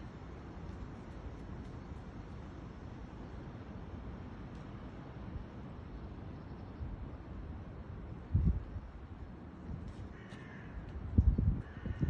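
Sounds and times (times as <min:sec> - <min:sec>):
footsteps on woodland ground: 0:09.9 - 0:10.6.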